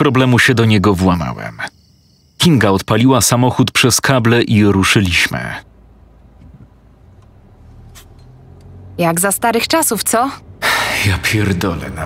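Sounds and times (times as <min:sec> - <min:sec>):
car engine humming: 0:02.4 - 0:12.0.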